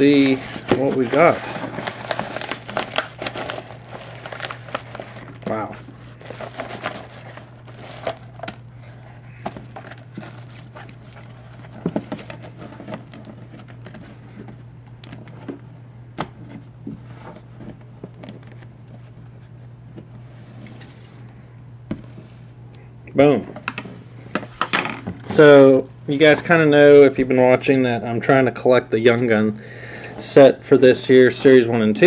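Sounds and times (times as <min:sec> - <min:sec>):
paper mailer crinkling: 0:00.0 - 0:15.6.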